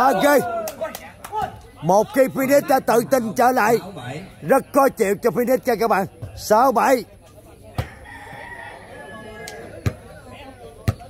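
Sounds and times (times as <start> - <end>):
rooster crowing: 7.8 - 9.7.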